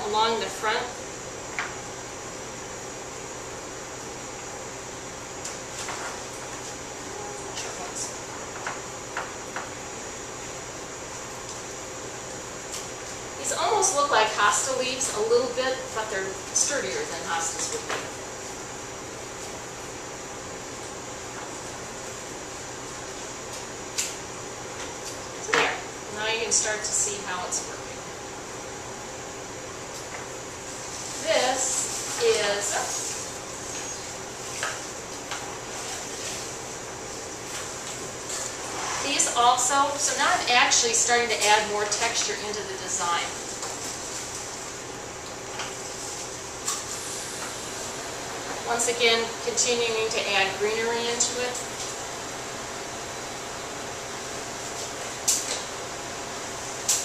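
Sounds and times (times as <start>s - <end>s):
room hiss: 0.0s - 57.0s
person narrating: 31.2s - 33.1s.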